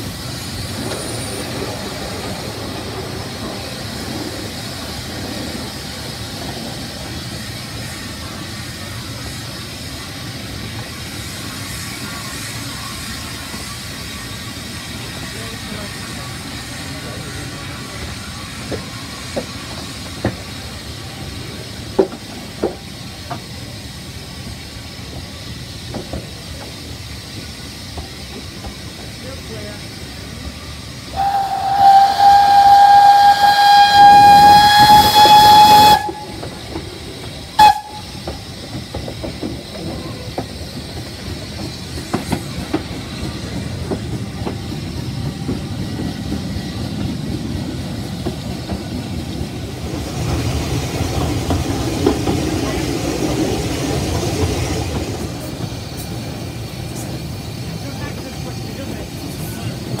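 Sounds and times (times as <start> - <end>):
carriage rumbling along track: 0.0 - 60.0
steam locomotive whistle: 31.1 - 36.6, 37.5 - 38.4.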